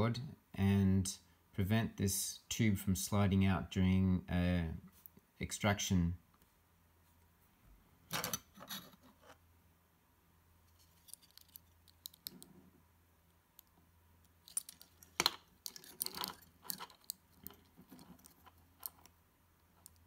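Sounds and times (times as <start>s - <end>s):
plastic and metal parts clicking: 11.0s - 12.5s, 14.4s - 19.2s.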